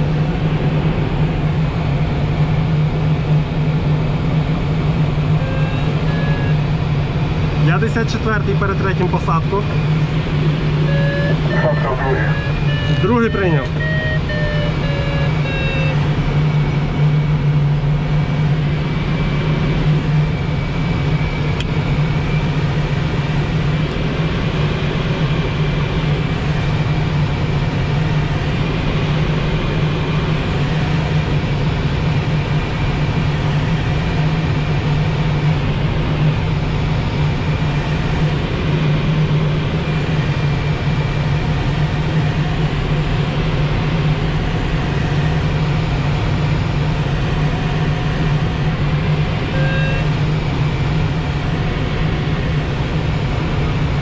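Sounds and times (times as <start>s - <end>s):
constant low hum: 0.0s - 54.0s.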